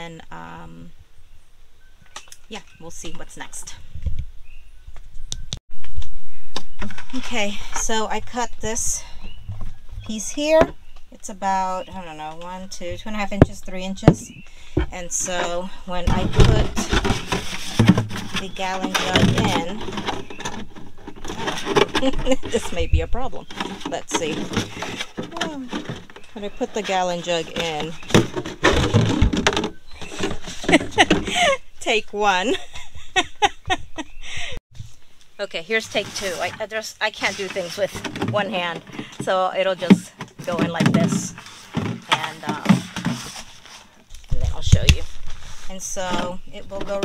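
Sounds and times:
rumbling handling noise: 2.1 - 47.0
plastic jug scraping in bucket: 6.8 - 10.6, 11.4 - 32.6, 35.6 - 47.0
clatter and rustling: 12.2 - 31.6, 35.7 - 47.0.

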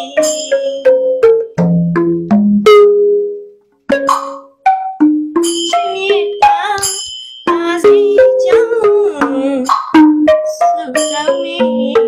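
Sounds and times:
tuned drums ringing: 0.0 - 3.3, 3.9 - 12.0.

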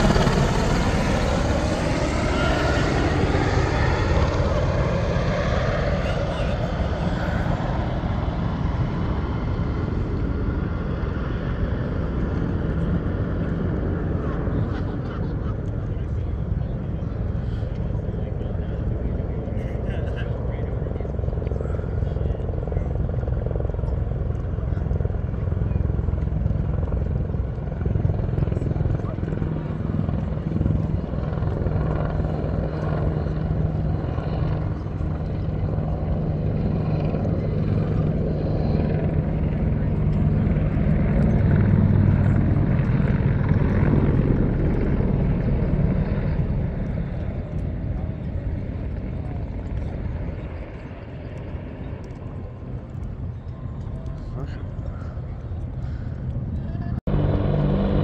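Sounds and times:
helicopter rotors rumbling: 0.0 - 58.0.

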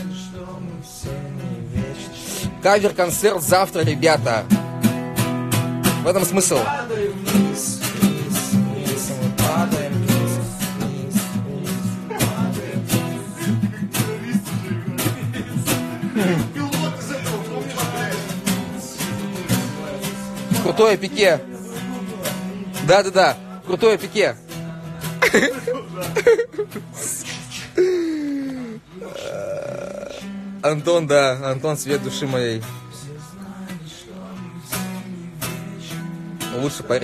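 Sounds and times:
acoustic guitar strumming chords: 0.0 - 37.0
person holding vocal tone: 26.2 - 30.3
person burp-like vocal sound: 28.9 - 30.3.

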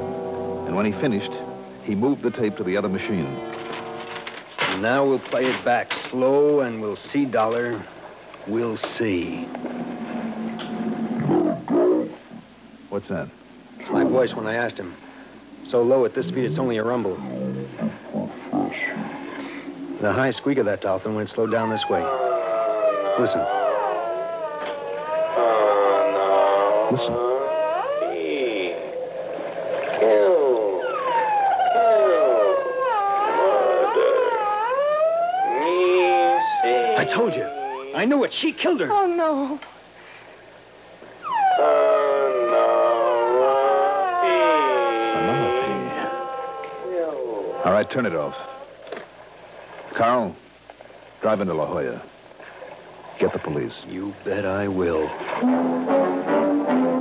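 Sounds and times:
tape hum: 0.0 - 38.3, 41.0 - 49.9, 54.0 - 57.0
slowed distorted man's voice: 15.7 - 19.0, 21.4 - 29.2, 29.8 - 34.7, 35.3 - 38.3, 41.5 - 48.7.

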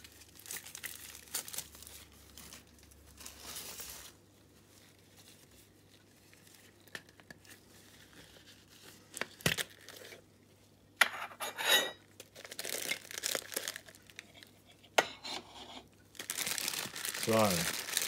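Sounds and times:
packaging rustling and crinkling: 0.0 - 10.3, 12.2 - 14.5, 16.1 - 18.0.

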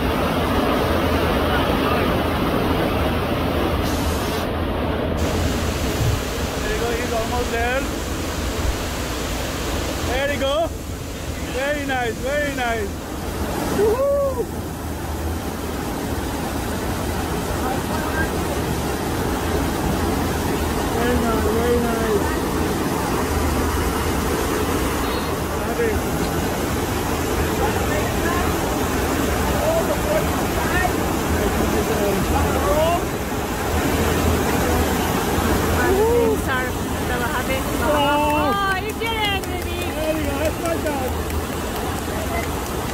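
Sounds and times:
rushing water: 0.0 - 42.9.

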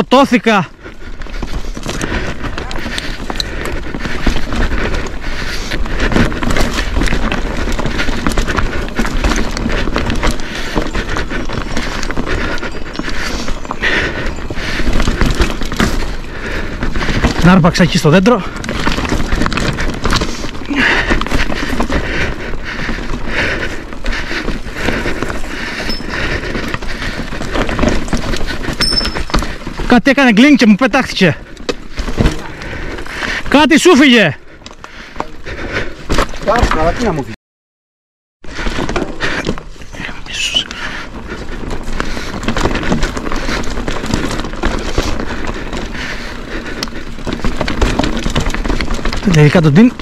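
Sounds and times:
bike tyres crunching on stones: 0.0 - 37.3, 38.4 - 50.0
bike chain and frame rattling: 0.2 - 37.3, 38.5 - 50.0.

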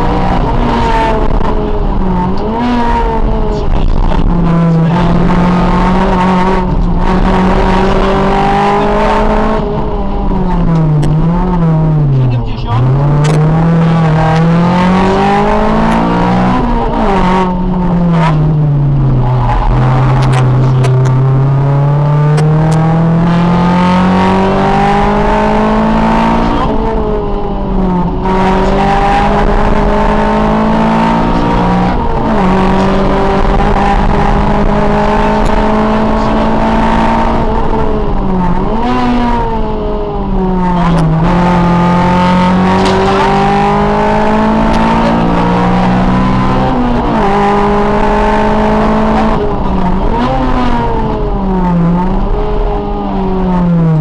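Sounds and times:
car engine revving hard: 0.0 - 54.0.

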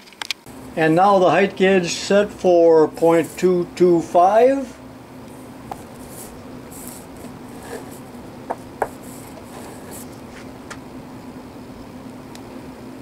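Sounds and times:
steady low hum: 0.3 - 13.0
scriber scratching metal: 5.9 - 10.5
gauge base sliding on bench: 6.0 - 10.5.

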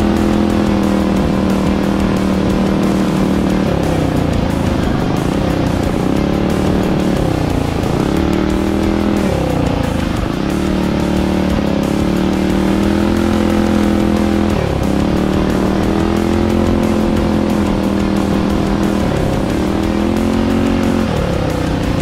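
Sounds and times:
small engine revving: 0.0 - 22.0.

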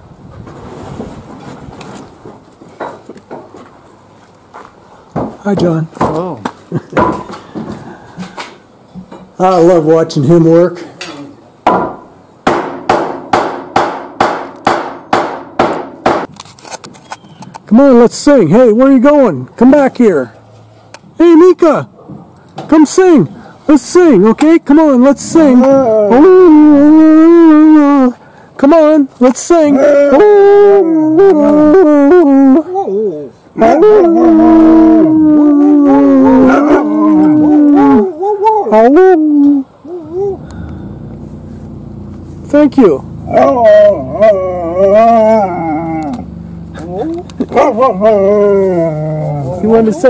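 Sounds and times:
hammer striking wooden framing: 5.2 - 6.2, 7.0 - 7.7, 11.6 - 16.4
dog howling: 25.5 - 28.0, 29.6 - 40.5, 43.2 - 50.0.

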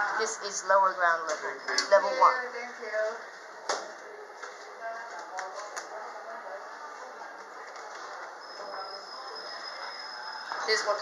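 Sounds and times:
faint background voices: 1.3 - 11.0.

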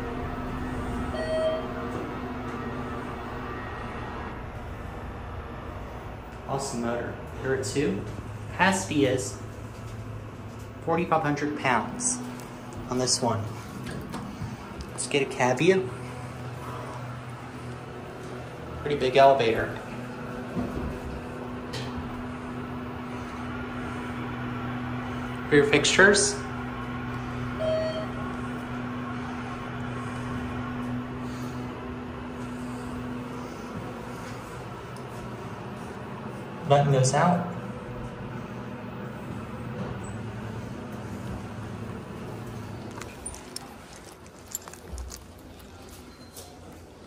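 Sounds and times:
elevator low hum: 0.0 - 47.0.

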